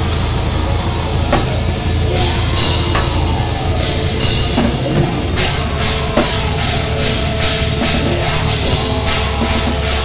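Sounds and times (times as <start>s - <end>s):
cymbal crash: 0.0s - 10.0s
drum kit played hard: 0.0s - 10.0s
rock band playing: 0.0s - 10.0s.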